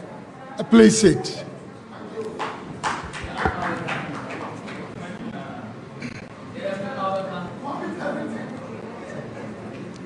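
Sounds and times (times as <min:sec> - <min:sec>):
faint murmur of voices: 0:00.0 - 0:10.0
audience knocks and shuffling: 0:02.4 - 0:05.0.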